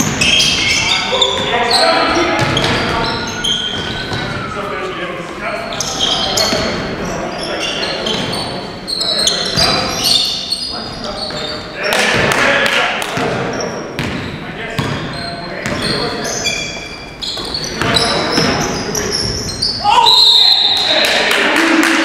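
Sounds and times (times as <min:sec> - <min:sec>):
sneakers squeaking on hardwood: 0:00.0 - 0:04.7, 0:05.6 - 0:12.3, 0:13.2 - 0:20.8
basketball bouncing: 0:02.4 - 0:03.1, 0:13.1 - 0:15.9.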